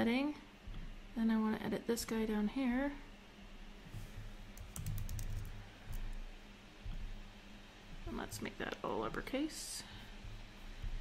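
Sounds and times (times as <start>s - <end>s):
computer keyboard typing: 4.6s - 6.0s.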